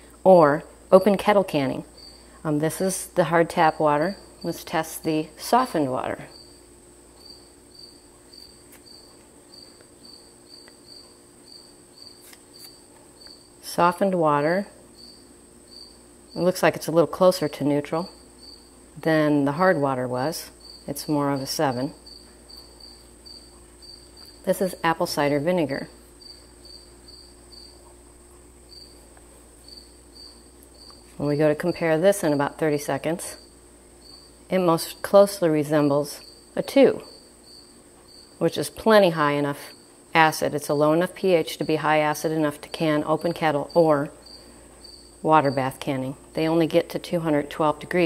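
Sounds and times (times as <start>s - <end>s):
low steady hum: 0.0s - 48.0s
cricket chirping: 1.5s - 2.4s, 5.8s - 13.6s, 14.9s - 16.7s, 17.4s - 18.8s, 19.7s - 35.2s, 35.9s - 40.1s, 40.8s - 46.5s.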